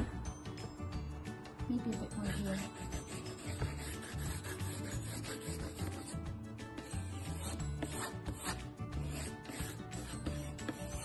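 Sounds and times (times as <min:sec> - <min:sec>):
background music with low notes: 0:00.0 - 0:11.0
pencil scratching on paper: 0:02.1 - 0:06.2, 0:06.8 - 0:11.0.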